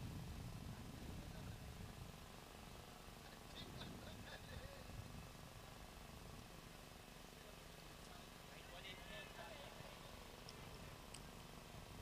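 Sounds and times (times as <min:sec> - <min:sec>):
open-air background noise: 0:00.0 - 0:12.0
faint distant voices: 0:00.5 - 0:12.0.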